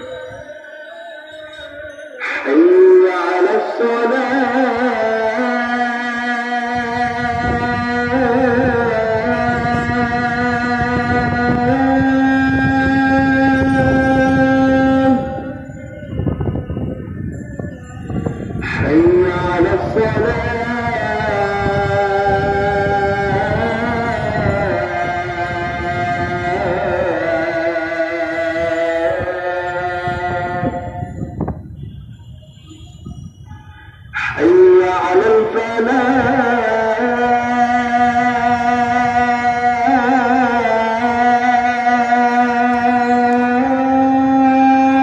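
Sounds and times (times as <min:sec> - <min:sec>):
man chanting call to prayer: 0:00.0 - 0:31.8, 0:34.0 - 0:45.0.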